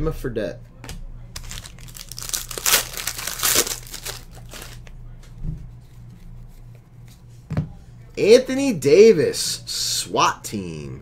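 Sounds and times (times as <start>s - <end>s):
foil wrapper crinkling: 1.4s - 4.9s.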